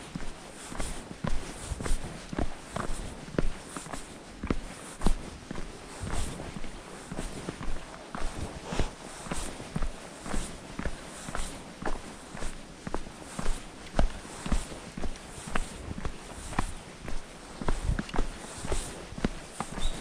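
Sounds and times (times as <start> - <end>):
footsteps on dirt trail: 0.0 - 20.0.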